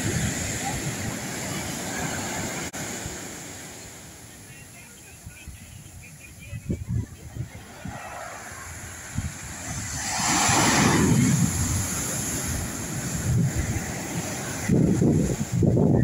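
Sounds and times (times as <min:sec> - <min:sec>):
wind buffeting microphone: 0:00.0 - 0:03.3, 0:05.1 - 0:16.0
surf breaking on sand beach: 0:00.0 - 0:16.0.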